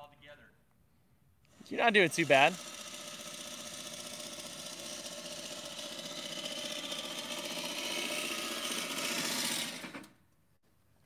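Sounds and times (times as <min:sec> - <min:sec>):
electric reel mower whirring: 0:01.5 - 0:10.2.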